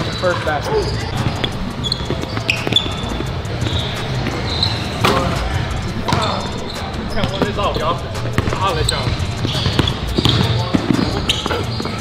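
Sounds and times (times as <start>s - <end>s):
sneaker squeaks: 0.0s - 12.0s
basketballs bouncing on wooden floor: 1.1s - 5.4s, 6.0s - 12.0s.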